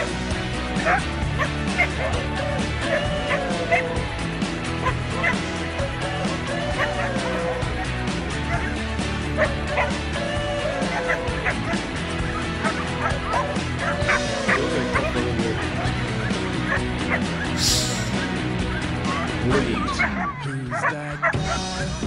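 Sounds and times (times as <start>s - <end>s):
music playing: 0.0s - 20.7s
dog barking: 0.8s - 4.0s, 4.8s - 18.2s, 19.1s - 21.9s.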